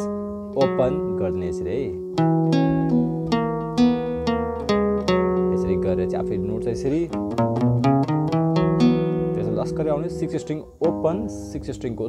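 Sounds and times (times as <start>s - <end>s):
acoustic guitar picked notes: 0.0s - 12.0s.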